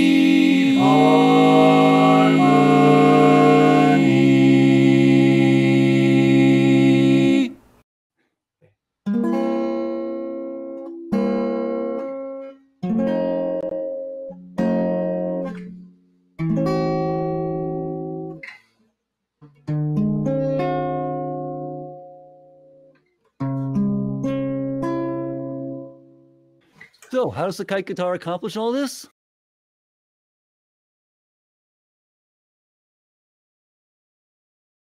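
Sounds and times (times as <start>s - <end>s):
guitar strumming slow chords: 0.0s - 7.5s, 9.1s - 18.4s, 19.6s - 26.3s
a cappella barbershop chord: 0.0s - 7.6s.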